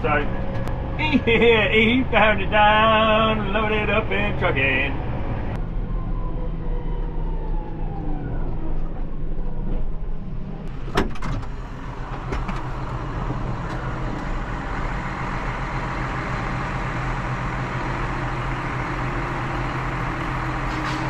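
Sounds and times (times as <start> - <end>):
tractor diesel engines running: 0.0 - 6.2, 10.5 - 21.0
tractor driving up alongside: 0.0 - 21.0.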